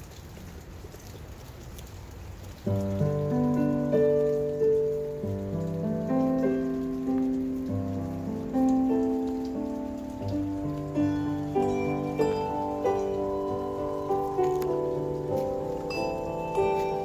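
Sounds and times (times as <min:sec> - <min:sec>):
steady hiss: 0:02.6 - 0:17.0
handbells and keyboard hymn: 0:11.0 - 0:17.0.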